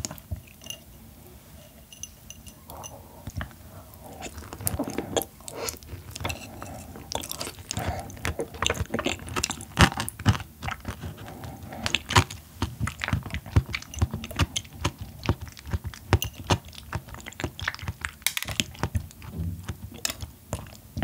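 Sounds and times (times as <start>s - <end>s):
mouth chewing clicks and smacks: 2.7s - 21.0s.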